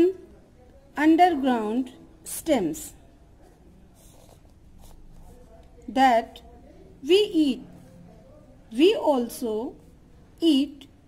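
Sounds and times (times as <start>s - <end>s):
pencil scratching on paper: 3.4s - 5.6s.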